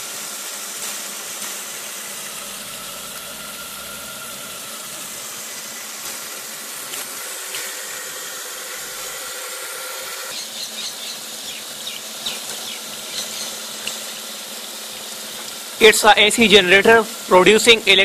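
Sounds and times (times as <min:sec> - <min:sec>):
faint turbine whine: 0:00.0 - 0:18.0
hose water spray hissing: 0:00.0 - 0:18.0.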